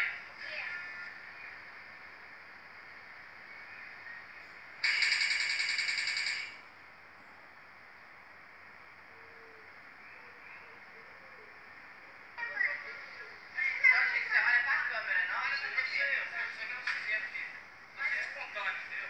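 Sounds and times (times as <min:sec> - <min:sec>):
videotape hiss: 0:00.0 - 0:19.0.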